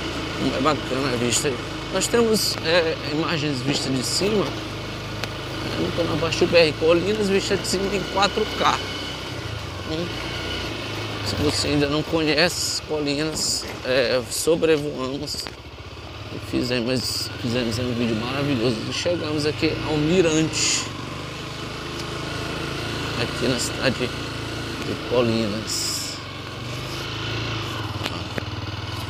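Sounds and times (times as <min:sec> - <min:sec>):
motorcycle engine drone: 0:00.0 - 0:29.0.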